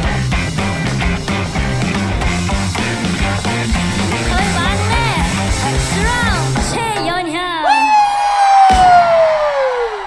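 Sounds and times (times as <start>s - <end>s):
person whooping and cheering: 7.6s - 10.0s.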